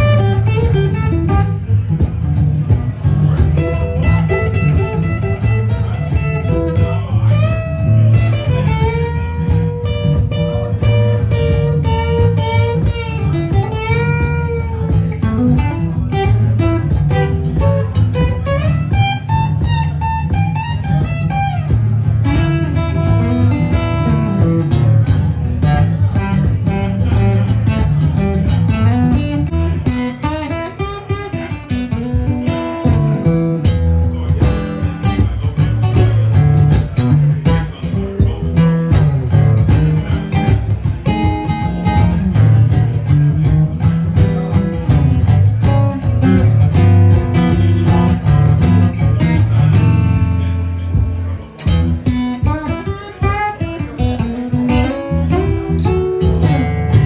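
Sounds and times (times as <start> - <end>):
acoustic guitar blues riffs: 0.0 - 57.0.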